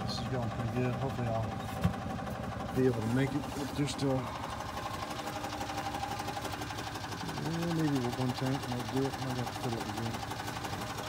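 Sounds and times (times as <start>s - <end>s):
electric pump chattering: 0.0s - 11.0s.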